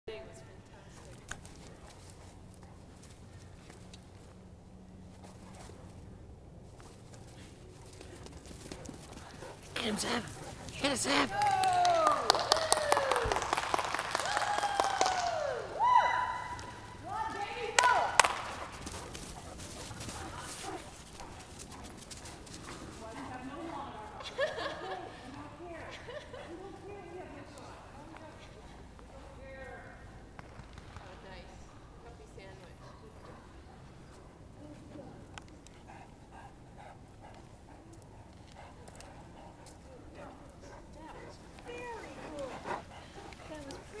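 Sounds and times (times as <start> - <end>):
dog paws running on dirt: 6.6 - 11.6, 16.5 - 23.6
quiet voices: 9.3 - 13.1
person speaking in sing-song phrases: 9.8 - 11.4
sharp clap: 11.1 - 15.6, 17.8 - 18.6.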